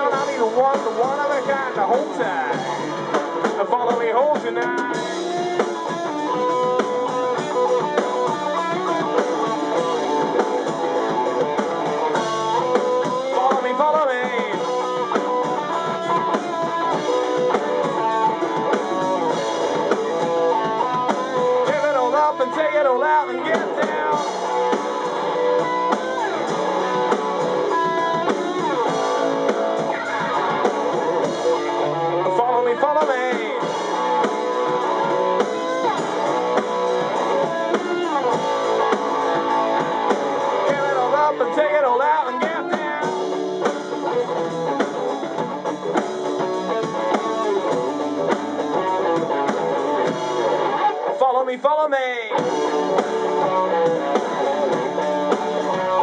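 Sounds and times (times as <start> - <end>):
drum kit: 0.0 - 56.0
electric guitars: 0.0 - 56.0
rock band playing live: 0.0 - 56.0.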